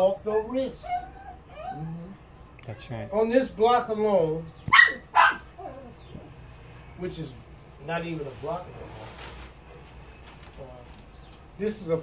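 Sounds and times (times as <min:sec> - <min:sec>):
dog barking: 0:04.7 - 0:05.8.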